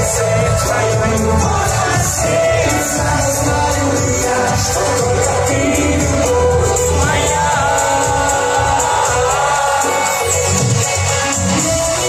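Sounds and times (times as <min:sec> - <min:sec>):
live pop ballad over speakers: 0:00.0 - 0:12.0
man singing long notes: 0:00.0 - 0:12.0.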